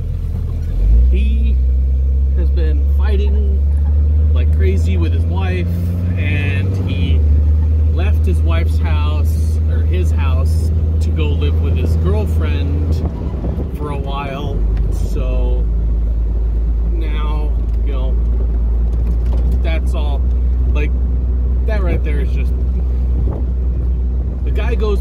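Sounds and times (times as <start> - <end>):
car engine and road noise: 0.0 - 25.0.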